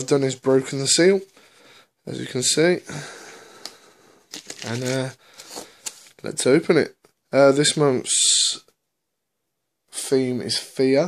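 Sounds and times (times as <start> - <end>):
cardboard box rustling: 4.3 - 5.6.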